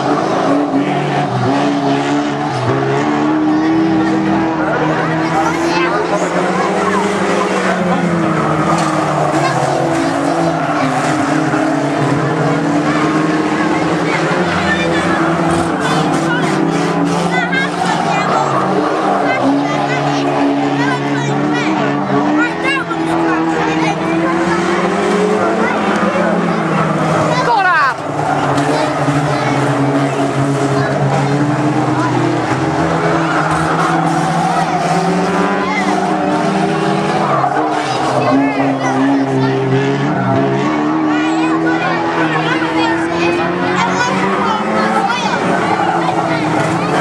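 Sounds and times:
racing car engines: 0.0s - 47.0s
tyres skidding: 0.0s - 47.0s
voices: 0.0s - 47.0s.

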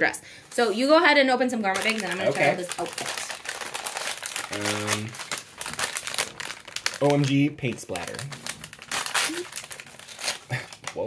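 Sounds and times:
plastic bag crinkling: 0.5s - 11.0s.

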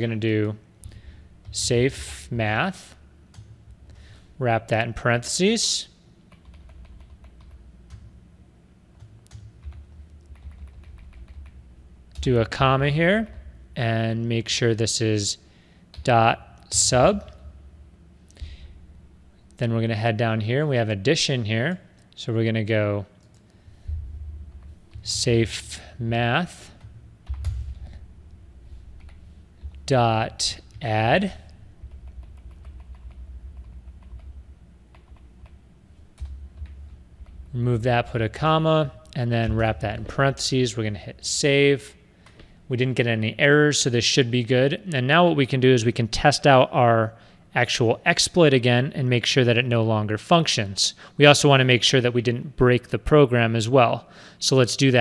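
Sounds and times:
low steady hum: 0.0s - 55.0s
computer keyboard typing: 6.3s - 8.1s, 9.0s - 11.6s, 26.8s - 28.0s, 31.8s - 35.6s, 36.2s - 37.4s.

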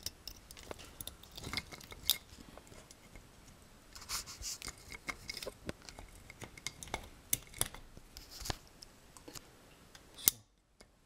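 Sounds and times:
light scraping: 3.9s - 6.2s.

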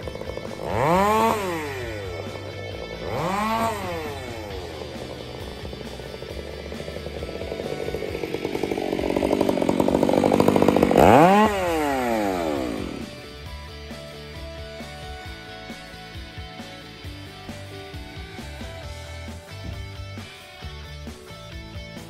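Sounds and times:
chainsaw revving and idling: 0.0s - 22.0s.

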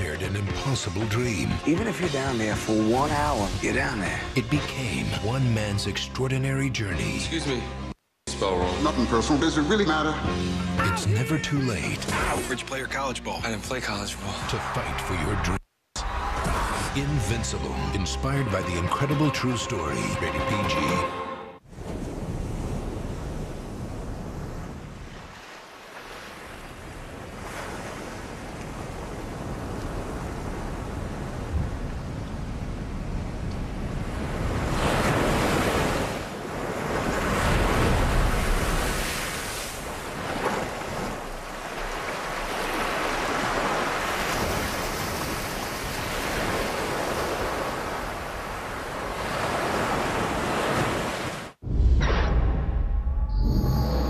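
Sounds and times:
ocean waves breaking on beach: 21.7s - 51.6s.

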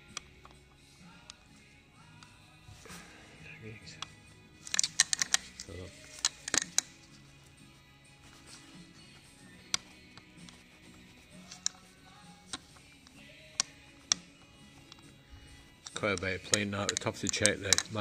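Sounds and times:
metal-on-metal clicks: 4.0s - 7.0s, 11.5s - 11.8s, 15.8s - 18.0s.

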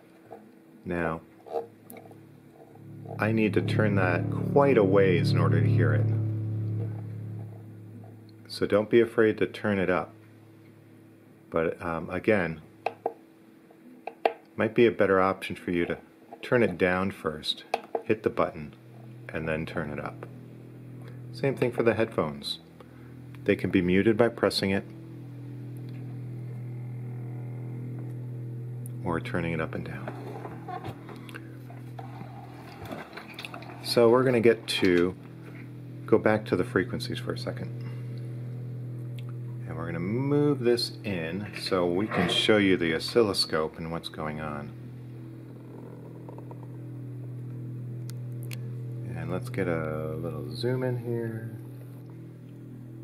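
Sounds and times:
low steady hum with overtones: 0.0s - 53.0s.

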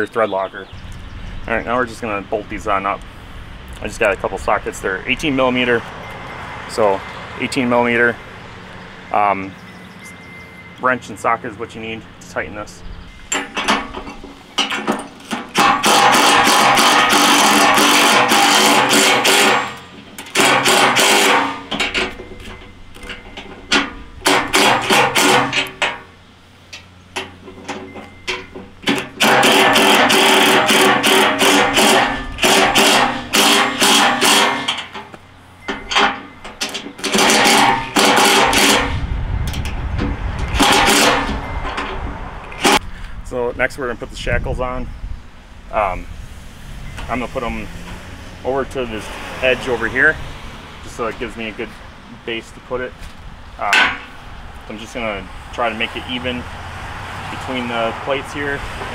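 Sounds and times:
impact driver rattling: 13.3s - 26.2s, 27.2s - 35.2s, 35.8s - 39.0s, 40.4s - 42.8s.

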